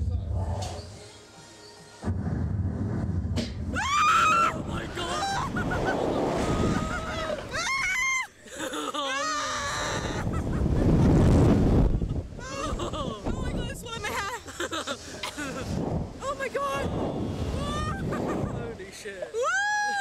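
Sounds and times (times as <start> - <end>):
wind on microphone: 2.1 - 8.0, 9.7 - 14.3, 15.3 - 18.8
people screaming: 3.7 - 8.3, 9.0 - 10.4.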